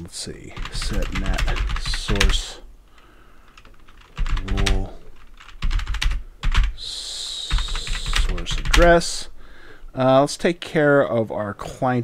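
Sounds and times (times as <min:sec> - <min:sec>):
computer keyboard typing: 0:00.6 - 0:02.6, 0:03.5 - 0:06.8, 0:07.5 - 0:09.0.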